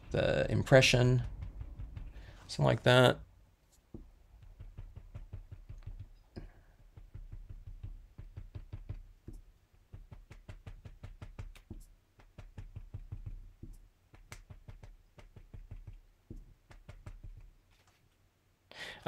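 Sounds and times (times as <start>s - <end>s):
foam dauber tapping paper: 0.0s - 18.1s.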